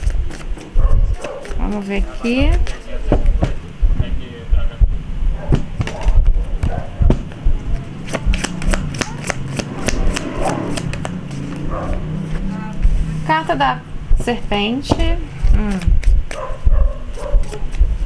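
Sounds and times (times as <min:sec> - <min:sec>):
cards being shuffled by hand: 0:00.0 - 0:03.6, 0:05.5 - 0:07.4, 0:08.0 - 0:11.7, 0:15.4 - 0:18.0.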